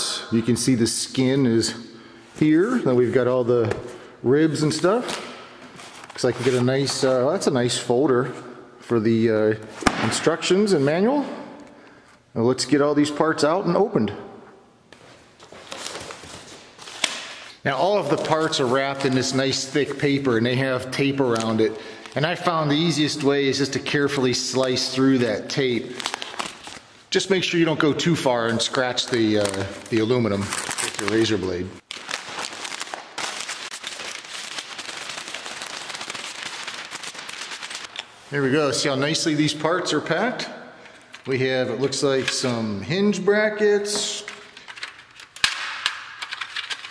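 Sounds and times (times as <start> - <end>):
packing paper rustling: 4.7 - 7.2, 15.0 - 23.1, 23.9 - 26.9, 28.4 - 38.4, 44.2 - 46.9.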